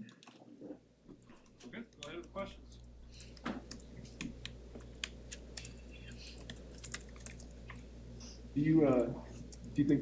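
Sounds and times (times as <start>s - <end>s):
steady low hum: 0.0s - 10.0s
keyboard typing clicks: 3.2s - 7.8s.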